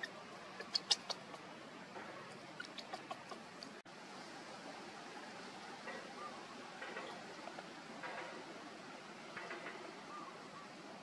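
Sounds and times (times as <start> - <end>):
baby monkey squeaking: 0.0 - 1.4, 2.6 - 3.5.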